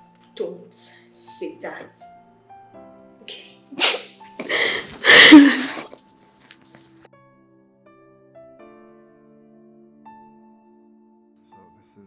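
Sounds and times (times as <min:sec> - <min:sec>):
soft background music: 0:00.0 - 0:12.0
woman crying: 0:03.7 - 0:06.0.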